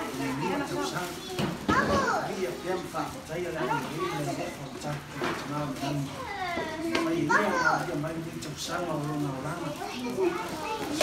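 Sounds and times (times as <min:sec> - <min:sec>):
children calling and squealing: 0:00.0 - 0:02.8, 0:05.7 - 0:08.0, 0:09.7 - 0:11.0.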